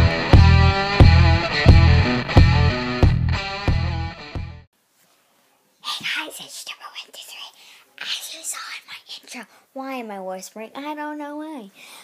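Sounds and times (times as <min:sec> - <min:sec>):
girl whispering: 0:05.8 - 0:09.9.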